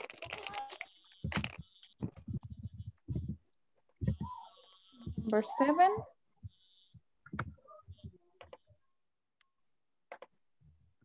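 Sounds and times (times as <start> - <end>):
computer keyboard typing: 0.0 - 3.4.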